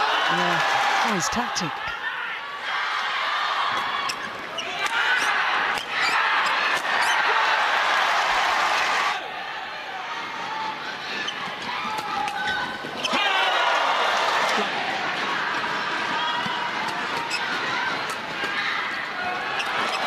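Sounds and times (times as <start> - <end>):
arena crowd noise: 0.0 - 20.0.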